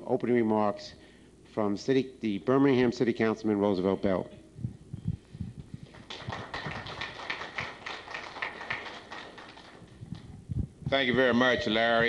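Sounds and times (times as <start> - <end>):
audience applause: 6.0 - 10.0.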